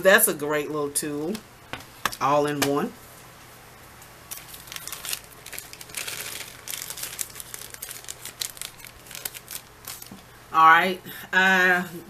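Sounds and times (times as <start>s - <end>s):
packaging crinkling: 4.3s - 10.3s.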